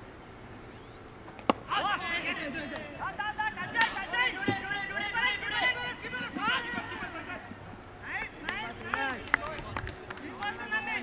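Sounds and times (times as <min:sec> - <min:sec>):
men calling out: 0:01.7 - 0:09.2.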